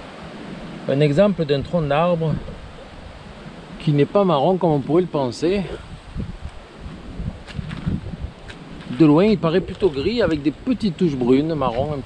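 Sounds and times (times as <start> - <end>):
leaves rustling: 0.0 - 12.0
wind buffeting microphone: 0.0 - 12.0.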